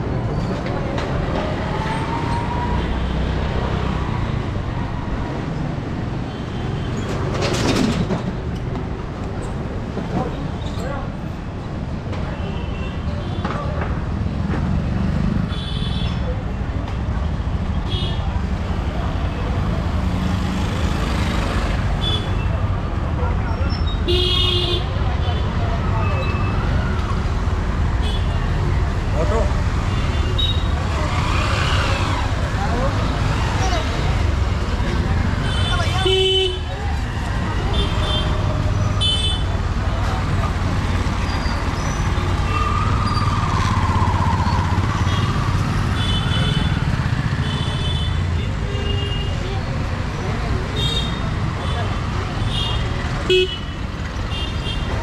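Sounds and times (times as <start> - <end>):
voices of passers-by: 0.0 - 55.0.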